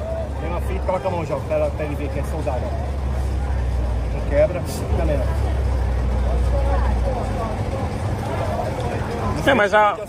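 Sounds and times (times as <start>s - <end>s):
faint background voices: 0.0s - 10.0s
low engine rumble: 0.0s - 10.0s.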